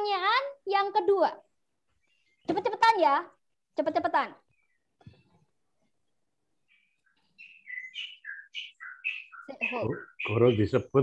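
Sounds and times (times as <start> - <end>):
small bird chirping: 0.0 - 11.0.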